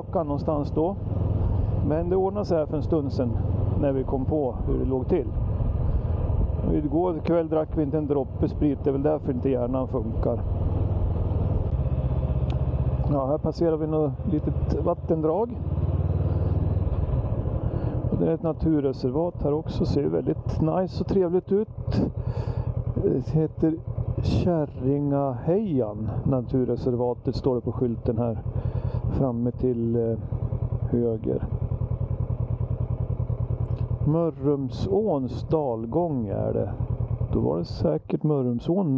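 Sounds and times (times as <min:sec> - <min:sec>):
motorcycle engine running: 0:00.0 - 0:38.9.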